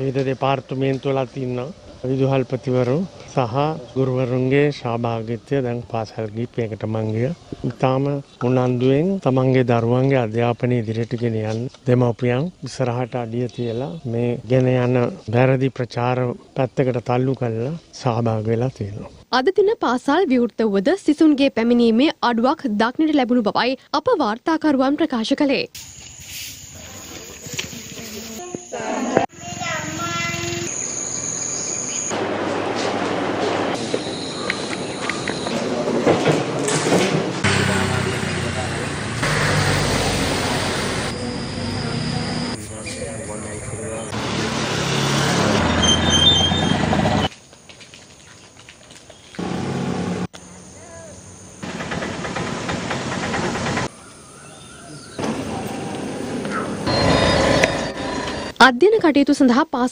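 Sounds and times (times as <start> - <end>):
insect high-pitched drone: 25.8 - 32.1, 33.8 - 35.6, 39.8 - 44.2, 50.3 - 51.7, 53.9 - 58.6
vehicle noise: 29.2 - 47.4, 49.3 - 58.6.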